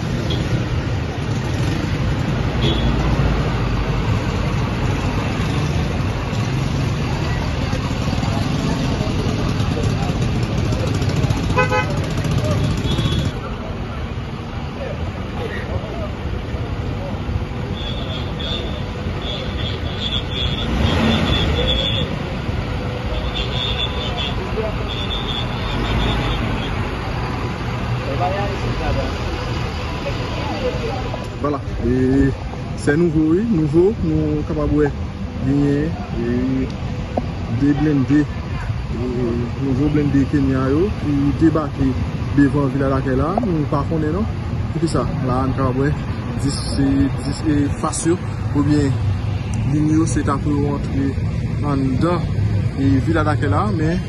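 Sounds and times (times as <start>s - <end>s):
vehicle engines rumbling: 0.0s - 54.0s
horn toot: 11.5s - 13.4s, 17.7s - 22.2s.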